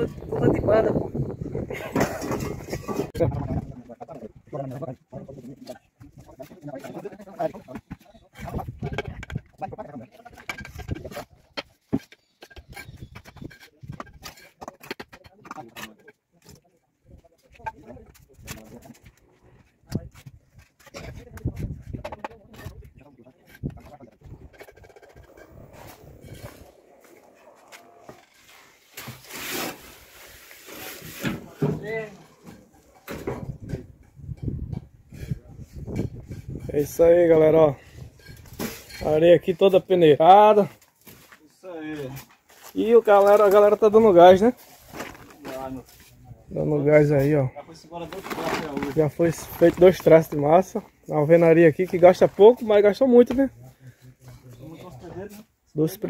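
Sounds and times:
trowels knocking and tapping bricks: 5.6 - 16.7, 20.2 - 26.7.

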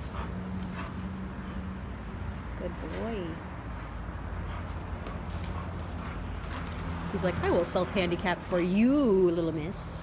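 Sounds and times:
dog paws scuffling on dirt: 4.5 - 8.9.

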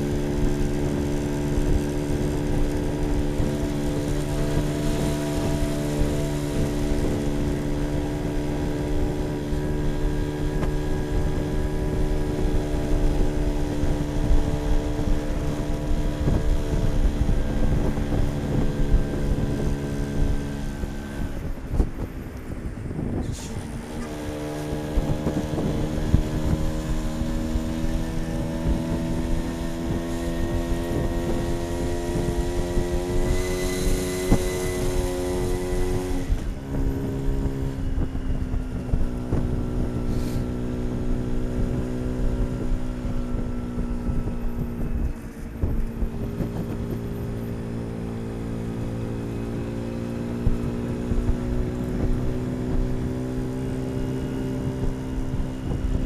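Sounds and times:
small motorbike engine: 0.0 - 56.0
wind on microphone: 0.0 - 56.0.

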